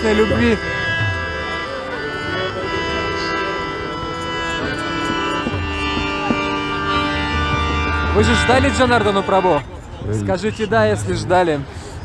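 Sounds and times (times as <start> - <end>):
harmonium playing sustained chords: 0.0 - 11.8.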